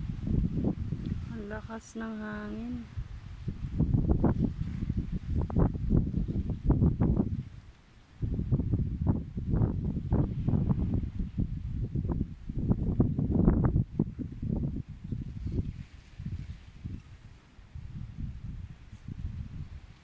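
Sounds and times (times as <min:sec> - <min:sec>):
strong wind buffeting microphone: 0:00.0 - 0:20.0.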